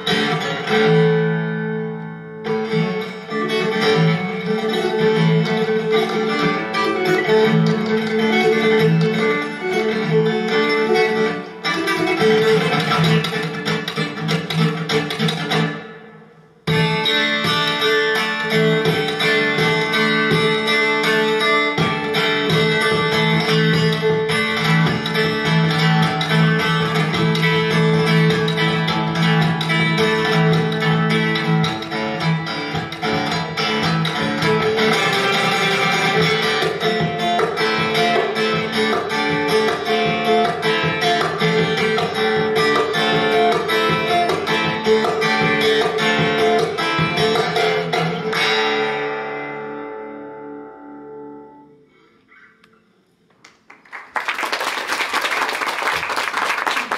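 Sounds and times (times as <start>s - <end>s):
acoustic guitar playing: 0.0s - 53.7s.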